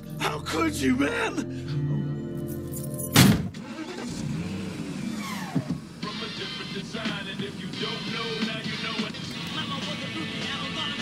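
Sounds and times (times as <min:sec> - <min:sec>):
film score music: 0:00.0 - 0:03.5.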